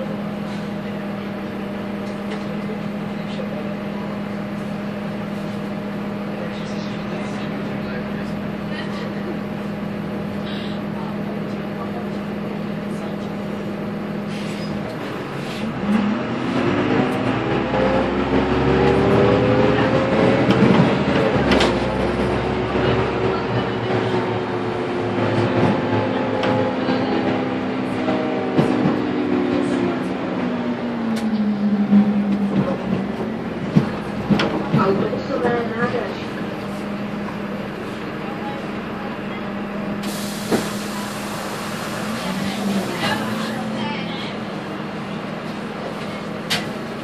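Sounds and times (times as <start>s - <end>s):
bus diesel engine: 0.0s - 47.0s.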